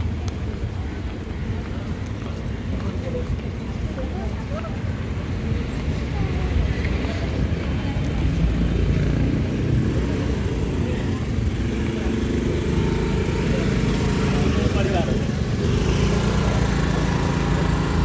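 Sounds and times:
people's voices: 0:00.0 - 0:18.0
scooter engine running: 0:06.5 - 0:18.0.

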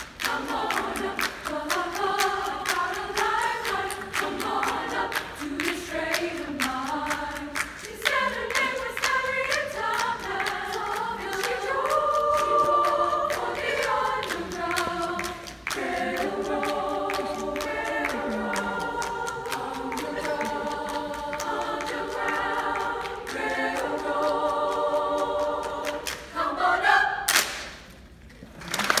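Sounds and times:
women's choir singing: 0:00.0 - 0:27.3
rhythmic hand claps: 0:00.0 - 0:28.0
audience applause: 0:28.6 - 0:29.0.

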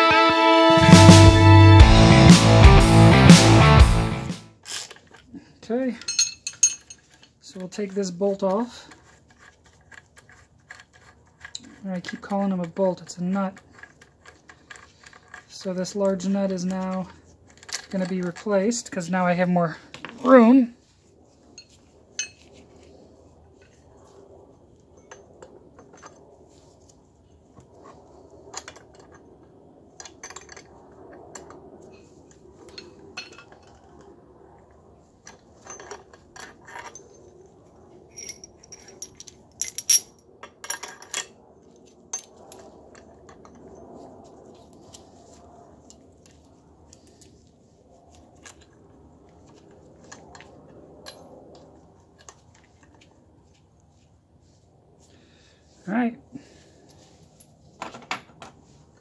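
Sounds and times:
steel tool parts clinking: 0:06.0 - 0:07.4, 0:38.1 - 0:41.3.

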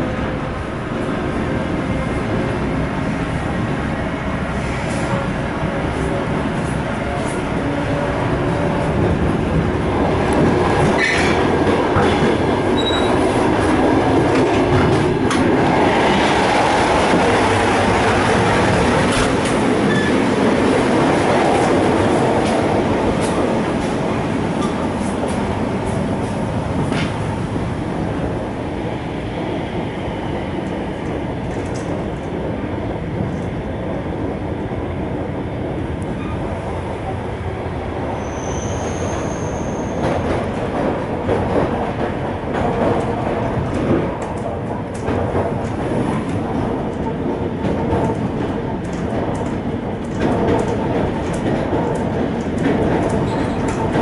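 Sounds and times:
train wheels rumbling on rails: 0:00.0 - 0:54.0
train knocks: 0:07.6 - 0:27.4, 0:38.6 - 0:54.0
high squeal: 0:38.2 - 0:40.0.

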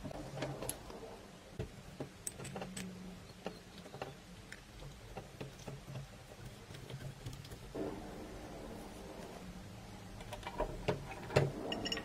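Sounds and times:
metal parts clicking and clinking: 0:02.2 - 0:04.6, 0:10.2 - 0:12.0.

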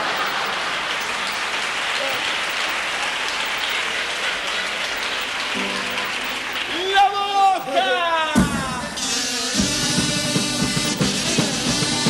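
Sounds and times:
audience applauding: 0:00.0 - 0:07.7
pitched melody: 0:05.6 - 0:06.8.

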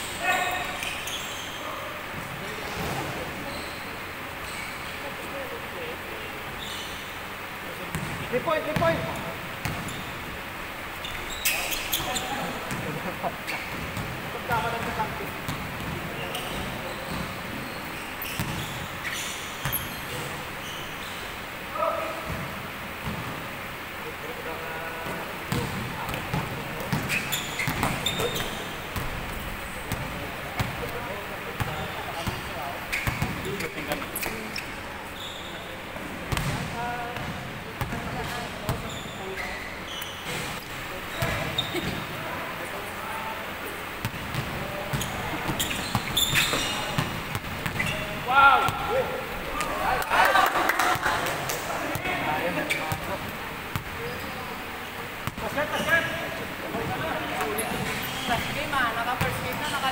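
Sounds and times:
players' voices and shouts: 0:00.0 - 0:06.5, 0:47.8 - 0:59.9
basketballs bouncing on wooden floor: 0:07.9 - 0:10.1, 0:13.7 - 0:17.4, 0:18.2 - 0:18.9, 0:25.0 - 0:31.0, 0:31.6 - 0:34.4, 0:36.3 - 0:38.9, 0:44.0 - 0:48.9.

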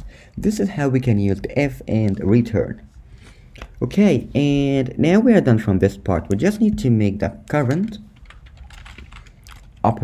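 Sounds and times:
computer keyboard typing: 0:07.6 - 0:10.0.

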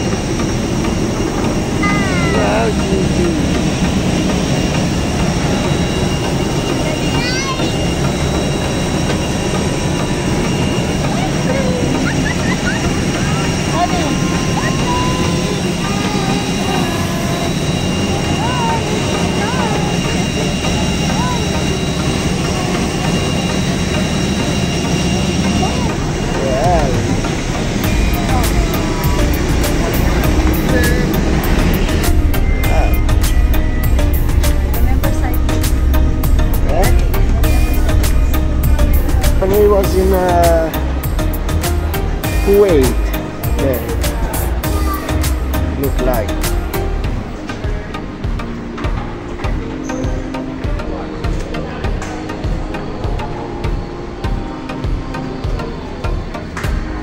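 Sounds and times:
jet engine roar with high whine: 0:00.0 - 0:57.0
low engine rumble: 0:00.0 - 0:57.0
scattered voices: 0:00.0 - 0:57.0.

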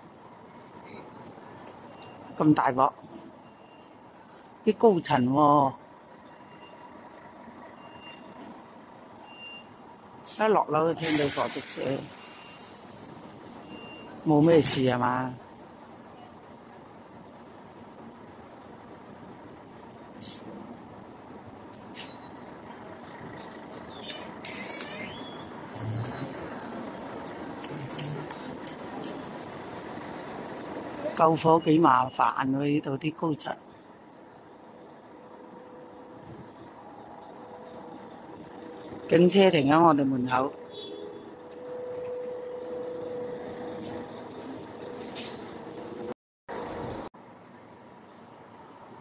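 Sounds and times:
traffic noise: 0:00.0 - 0:49.0
vehicles running: 0:12.1 - 0:32.0, 0:33.5 - 0:49.0
high sliding squeaks: 0:23.4 - 0:26.7.

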